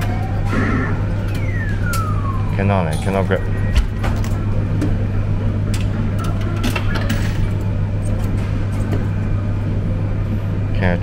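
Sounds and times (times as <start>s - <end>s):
arcade hum: 0.0s - 11.0s.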